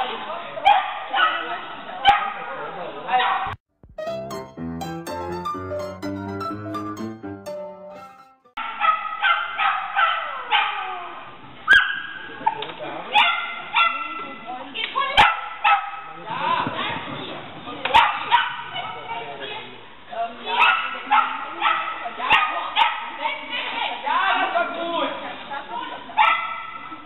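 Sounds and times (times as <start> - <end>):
dog yipping barks: 2.1 - 2.4, 8.6 - 10.8, 11.7 - 12.1, 13.2 - 14.1, 15.2 - 16.0, 18.0 - 18.7, 20.6 - 23.1, 26.2 - 26.8.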